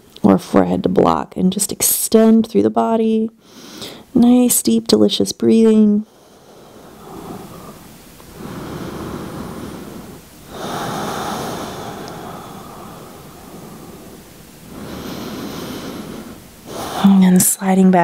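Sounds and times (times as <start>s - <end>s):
woman breathing deeply: 3.4s - 4.1s, 6.0s - 17.2s.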